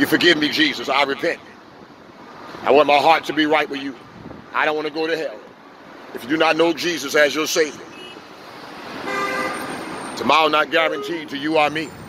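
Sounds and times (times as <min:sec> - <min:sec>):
street traffic noise: 0:00.0 - 0:12.0
vehicle horn honk: 0:09.0 - 0:09.7.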